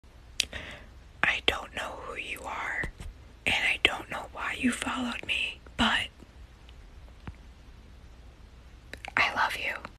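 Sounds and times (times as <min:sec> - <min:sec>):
person whispering: 0:01.2 - 0:02.9, 0:03.5 - 0:06.2, 0:09.0 - 0:09.9.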